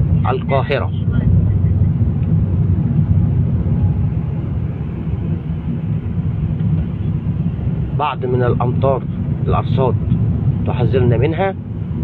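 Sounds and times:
car driving on wet road: 0:00.0 - 0:12.0.

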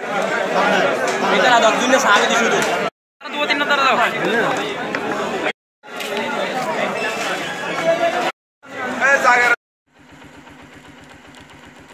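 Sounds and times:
crowd voices: 0:00.0 - 0:09.6
engine idling: 0:09.9 - 0:11.9.

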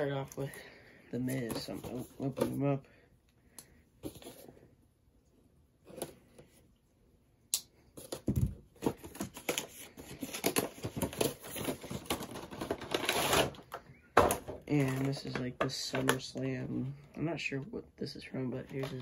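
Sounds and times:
packaging being opened by hand: 0:08.0 - 0:16.3.

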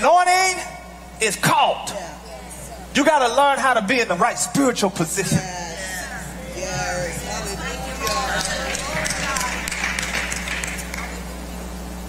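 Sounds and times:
congregation calling out: 0:00.0 - 0:11.2
hand claps: 0:08.0 - 0:11.3.

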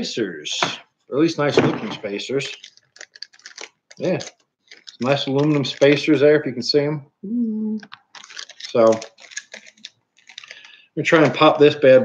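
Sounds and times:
plastic packaging crinkling: 0:02.1 - 0:06.2, 0:07.8 - 0:11.4
small plastic clicks: 0:02.4 - 0:06.0, 0:07.8 - 0:10.7.

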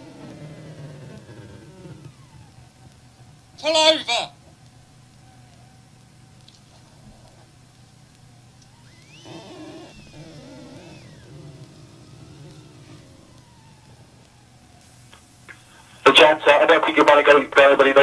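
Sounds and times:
car engine accelerating: 0:00.0 - 0:03.6, 0:08.3 - 0:16.0
low cabin drone: 0:00.0 - 0:03.6, 0:08.2 - 0:16.9
high-pitched squeal: 0:08.7 - 0:15.8.

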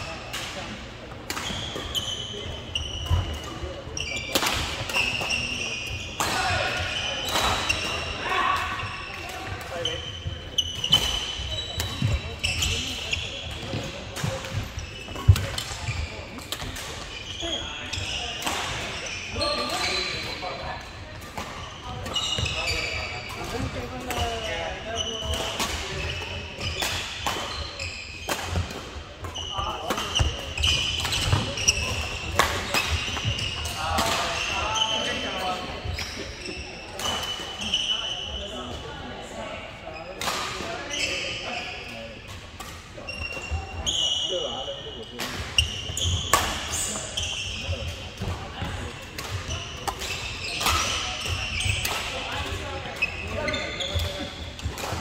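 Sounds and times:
sneakers squeaking on wooden floor: 0:01.4 - 0:38.8, 0:40.0 - 0:42.3, 0:43.0 - 0:55.0.

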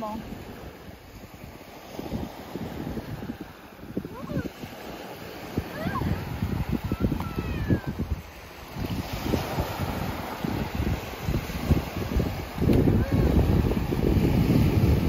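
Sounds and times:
small waves washing on sand: 0:00.0 - 0:15.0
wind buffeting microphone: 0:00.0 - 0:15.0.

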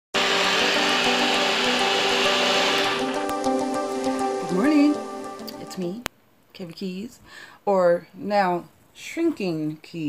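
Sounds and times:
blender running: 0:00.1 - 0:05.2
background music: 0:00.2 - 0:06.1.

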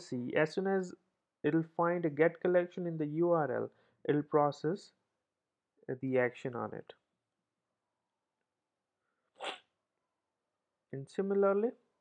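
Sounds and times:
breathy sniff: 0:09.4 - 0:09.6.

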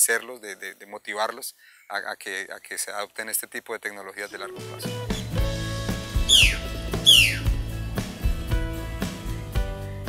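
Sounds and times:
music with steady beat: 0:04.6 - 0:10.0
bird harsh calls: 0:06.2 - 0:07.5.

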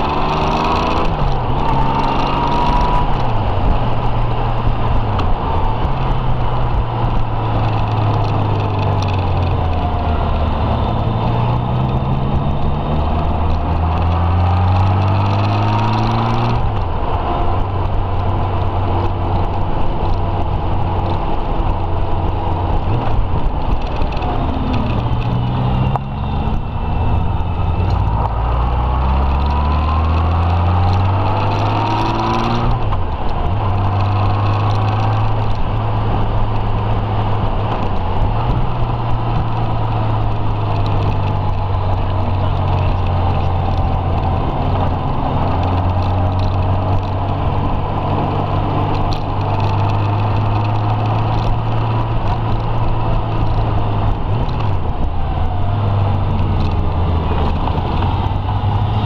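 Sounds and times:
motorcycle engine revving: 0:00.0 - 0:59.0
wind and road rush: 0:00.0 - 0:59.0.

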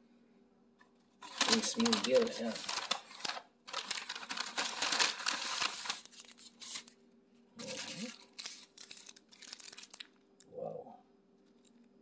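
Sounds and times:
paper wrapper crinkling: 0:01.2 - 0:07.0, 0:07.6 - 0:10.4, 0:11.4 - 0:11.9.

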